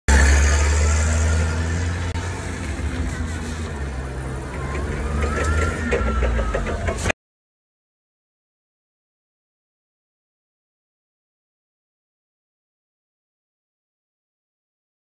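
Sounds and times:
forklift engine droning: 0.1s - 7.2s.

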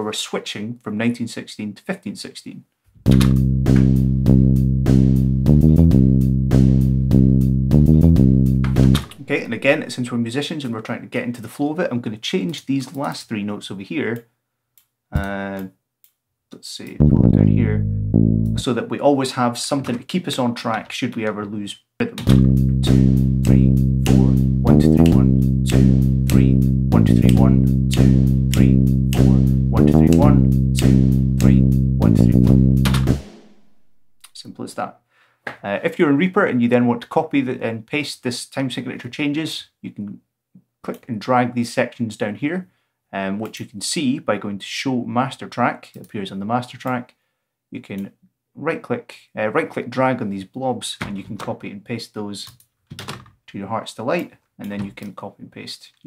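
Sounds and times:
synth bass line: 3.0s - 9.9s, 17.0s - 18.6s, 22.3s - 34.2s
sequenced drum beat with hi-hats: 3.1s - 10.0s, 22.3s - 34.4s.

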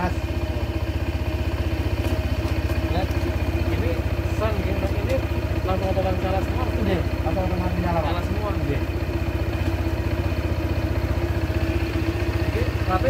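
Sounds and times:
scooter engine idling: 0.0s - 13.0s.

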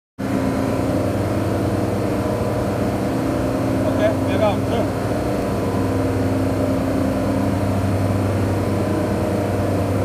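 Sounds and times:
machinery humming: 0.2s - 10.0s.

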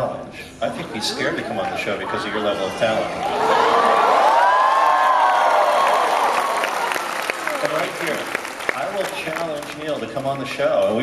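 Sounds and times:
audience cheering: 3.2s - 9.9s
clapping: 5.6s - 10.0s.

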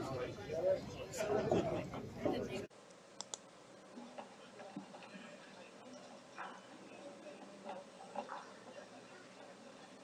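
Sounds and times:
voices in a hall: 0.0s - 2.8s, 3.8s - 10.0s
sharp clicks: 3.2s - 3.5s.

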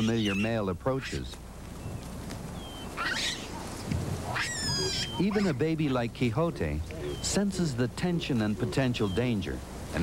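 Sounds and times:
baboon calls: 0.0s - 1.2s, 2.6s - 7.4s, 8.3s - 9.4s.

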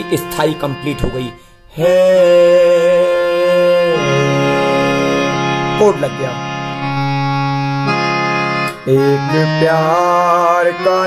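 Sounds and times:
reed organ keyboard chord: 0.0s - 11.0s.

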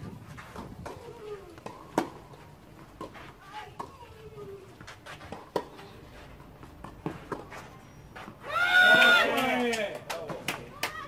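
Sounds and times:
tennis ball hits: 0.5s - 2.4s.

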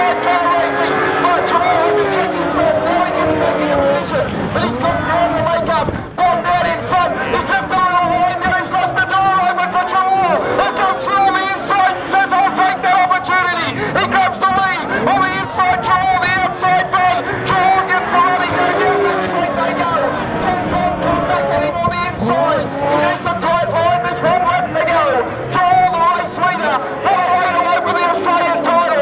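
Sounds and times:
racing sidecar engines: 0.0s - 29.0s.

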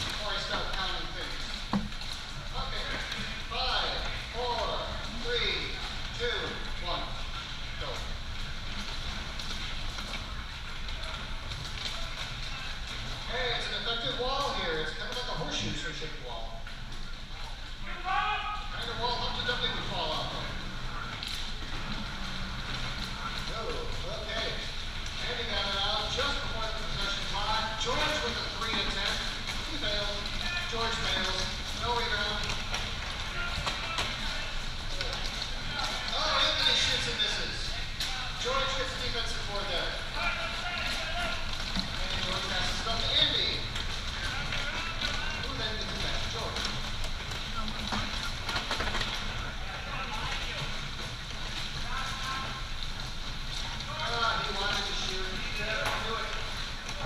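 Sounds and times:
low background hum: 0.0s - 57.0s.

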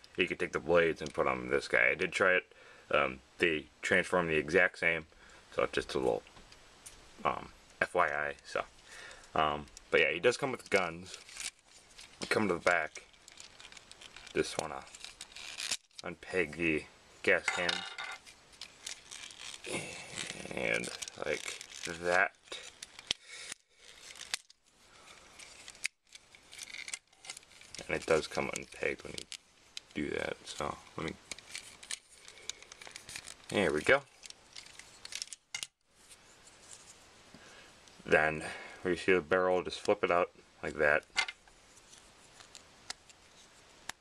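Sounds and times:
plastic toy parts clicking and rubbing: 9.2s - 16.1s, 17.3s - 37.0s, 40.9s - 44.0s.

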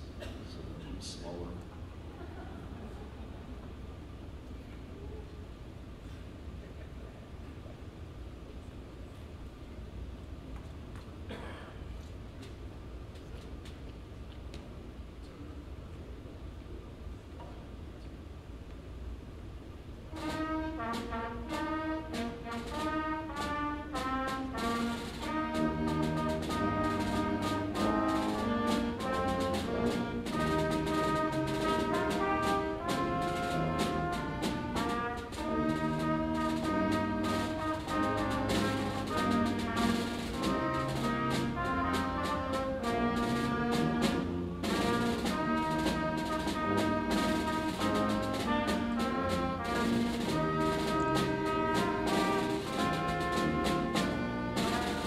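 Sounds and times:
brass and woodwinds melody: 20.1s - 55.0s
steady drum beat: 20.1s - 55.0s
tuba: 20.1s - 55.0s.

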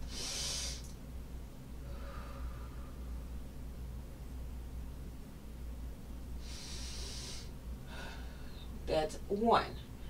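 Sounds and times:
woman breathing: 0.0s - 1.0s, 1.8s - 3.4s, 6.4s - 8.8s.

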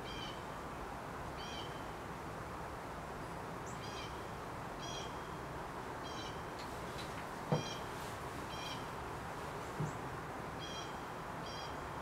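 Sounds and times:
steady background hiss: 0.0s - 12.0s
bird chirping: 6.0s - 7.9s, 8.5s - 8.9s, 9.8s - 11.9s.

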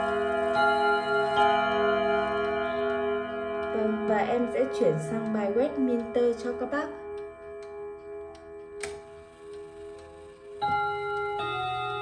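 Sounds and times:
clock chime melody on gong rods: 0.0s - 12.0s
faint clock ticking: 0.0s - 12.0s
sharp click: 8.4s - 10.1s.

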